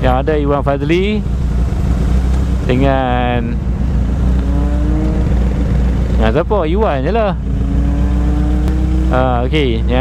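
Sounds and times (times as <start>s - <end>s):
motorcycle engine idling: 0.0s - 7.8s.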